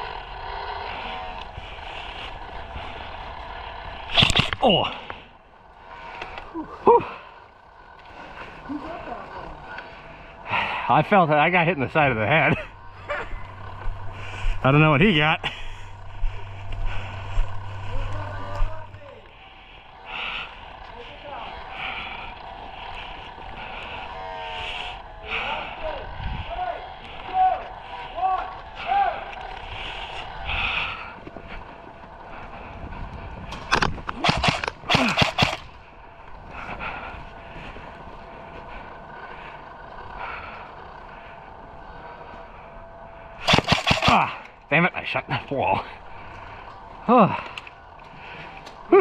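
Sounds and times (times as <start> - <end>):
sharp cracks: 4.0 - 5.3, 33.5 - 35.9, 43.4 - 44.7
faint voices: 6.4 - 32.8
footsteps on grass: 12.5 - 19.5.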